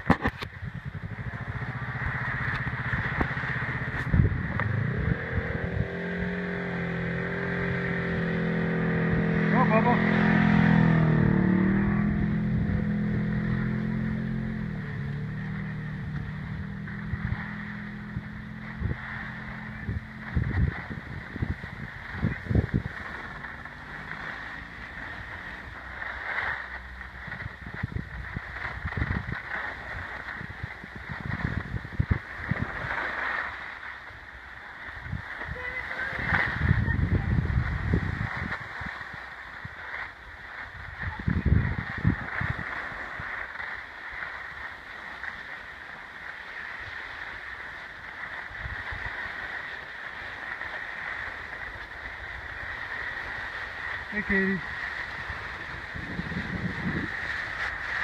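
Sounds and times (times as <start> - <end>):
skis scraping over snow: 0.0 - 58.0
wind rumbling on microphone: 0.0 - 58.0.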